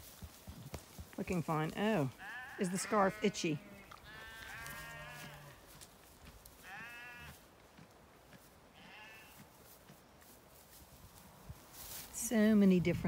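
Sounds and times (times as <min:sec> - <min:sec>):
sheep bleating: 0:02.2 - 0:05.7, 0:06.6 - 0:07.4, 0:08.7 - 0:09.4.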